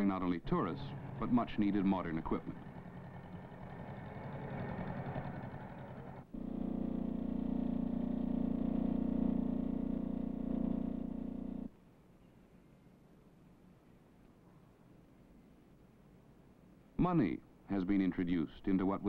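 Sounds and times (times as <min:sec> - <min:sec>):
motorcycle engine running: 0:00.0 - 0:11.7
tractor engine running: 0:00.0 - 0:11.7.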